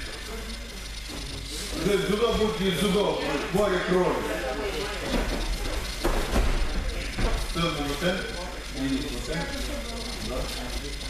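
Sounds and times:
indistinct talk: 0.0s - 11.0s.

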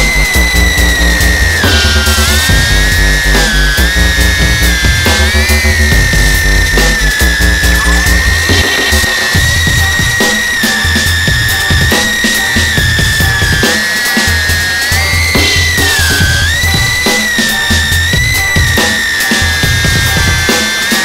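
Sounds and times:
drone motors whining: 0.0s - 21.0s.

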